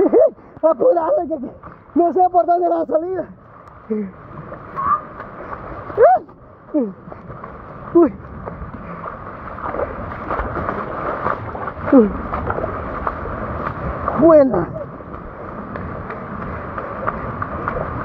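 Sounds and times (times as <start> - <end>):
river rushing: 3.4 - 18.0
person exclaiming: 6.0 - 7.0.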